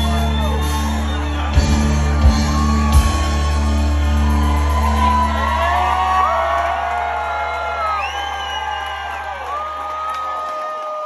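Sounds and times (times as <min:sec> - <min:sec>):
crowd whooping and cheering: 0:00.0 - 0:11.0.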